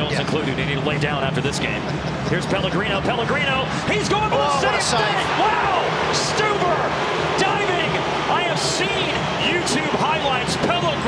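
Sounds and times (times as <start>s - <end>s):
crowd shouting and cheering: 2.6s - 11.0s.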